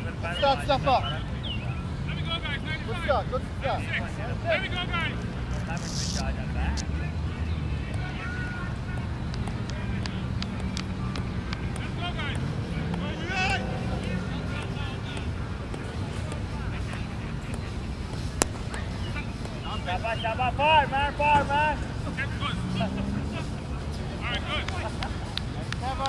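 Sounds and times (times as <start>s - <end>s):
distant traffic: 0.0s - 26.0s
wind: 0.0s - 26.0s.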